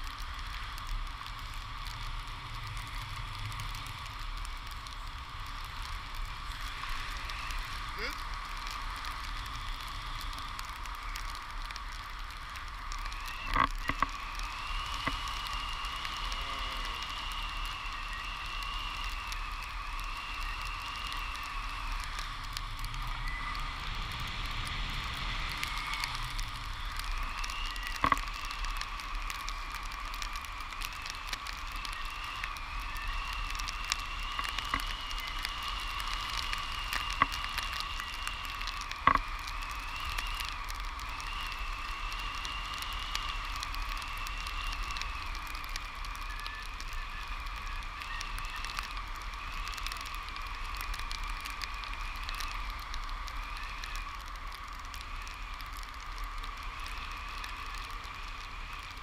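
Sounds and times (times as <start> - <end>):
constant whistling tone: 0.0 - 59.0.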